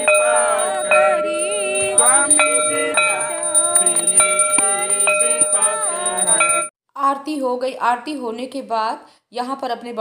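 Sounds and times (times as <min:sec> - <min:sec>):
group of voices singing: 0:00.0 - 0:06.7
hand bell ringing: 0:00.0 - 0:06.7.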